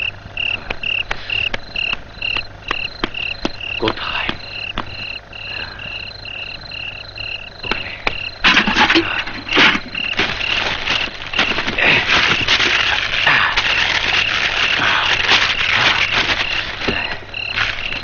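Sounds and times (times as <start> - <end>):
repeated chirping call: 0.0 - 8.8
scattered clicks: 0.4 - 5.9
rough crashing and rustling: 7.6 - 18.0.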